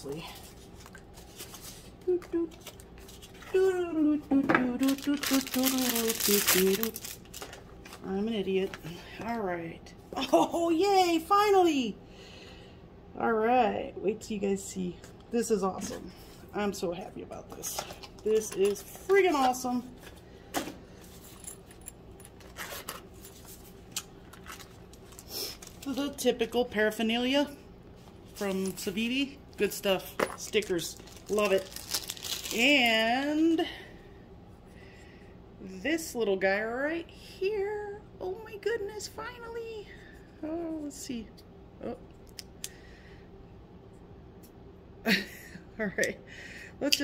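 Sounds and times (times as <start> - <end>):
packing peanuts and cardboard rustling: 4.7 - 8.1, 22.4 - 26.2, 28.4 - 33.3.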